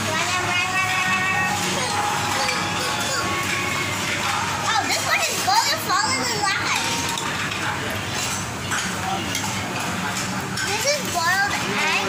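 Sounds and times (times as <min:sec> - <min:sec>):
restaurant hubbub: 0:00.0 - 0:12.0.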